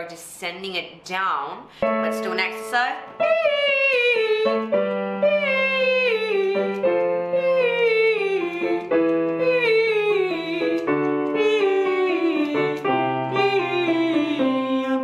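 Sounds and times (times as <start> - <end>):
piano chords: 1.7 - 15.0
woman singing vocal warm-up: 2.1 - 15.0.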